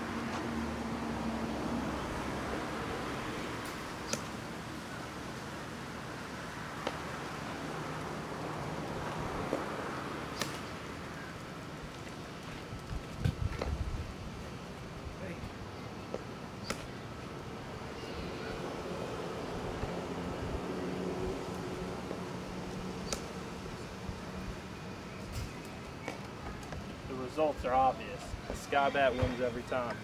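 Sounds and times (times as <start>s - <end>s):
outdoor background noise: 0.0s - 30.0s.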